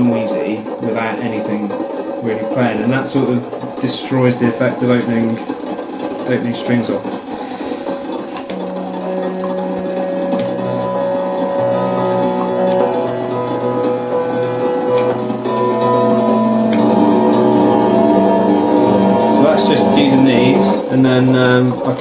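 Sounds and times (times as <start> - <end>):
constant mechanical noise: 0.0 - 22.0
sustained electric string tones: 0.0 - 22.0.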